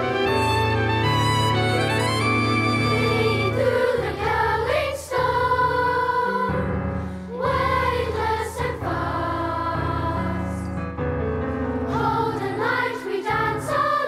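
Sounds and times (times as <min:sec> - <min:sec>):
strings: 0:00.0 - 0:05.6
piano: 0:00.0 - 0:14.0
children's choir singing: 0:02.4 - 0:10.6, 0:11.9 - 0:14.0.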